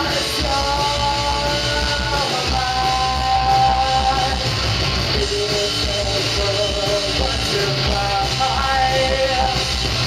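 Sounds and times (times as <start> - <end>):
drum kit with cymbals: 0.0 - 10.0
electric guitar: 0.0 - 10.0.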